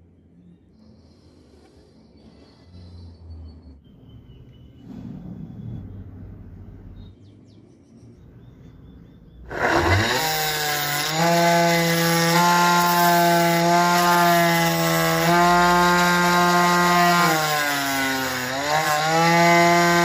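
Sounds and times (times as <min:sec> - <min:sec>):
plastic blades grinding on disc: 0:09.5 - 0:17.4
electric motor whining: 0:09.5 - 0:20.0.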